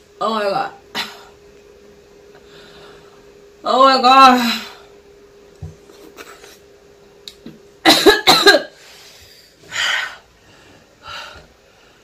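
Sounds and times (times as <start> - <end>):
woman coughing: 7.8 - 8.8.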